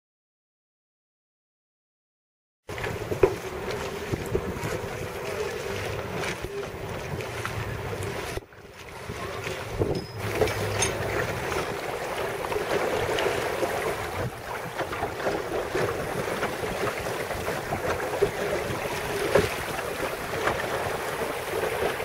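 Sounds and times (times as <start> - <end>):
water lapping around boats: 2.7 - 22.0
wind buffeting microphone: 2.7 - 22.0.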